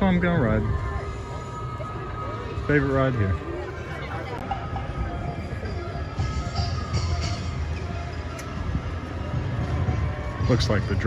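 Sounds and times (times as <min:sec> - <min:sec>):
drums and music: 0:04.4 - 0:11.0.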